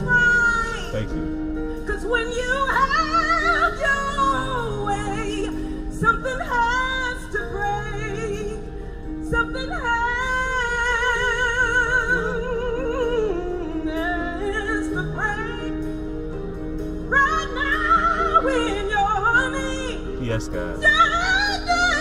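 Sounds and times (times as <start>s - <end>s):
woman singing gospel: 0.0s - 0.9s, 1.8s - 15.9s, 17.1s - 20.2s, 20.8s - 22.0s
band accompaniment chords: 0.0s - 9.8s, 12.2s - 22.0s.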